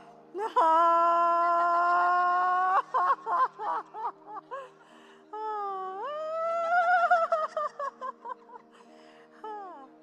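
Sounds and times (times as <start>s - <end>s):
woman's broken cries: 0.3s - 10.0s.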